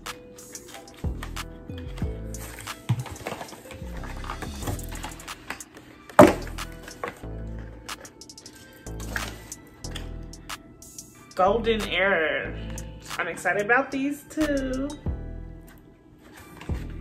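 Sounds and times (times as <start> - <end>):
instrumental beat with deep bass: 0.0 - 5.5, 6.2 - 12.0, 14.4 - 15.5
packets rustling and clicking: 0.2 - 10.1, 16.2 - 17.0.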